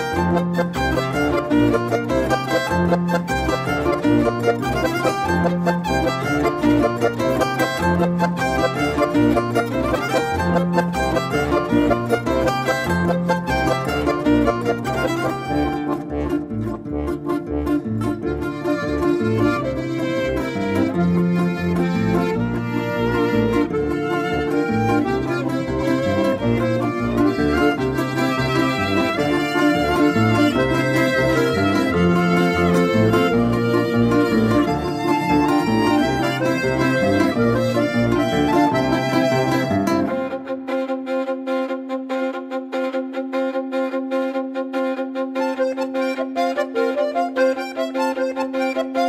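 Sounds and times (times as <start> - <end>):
accordion bass notes: 0.0 - 49.0
violin melody: 0.0 - 49.0.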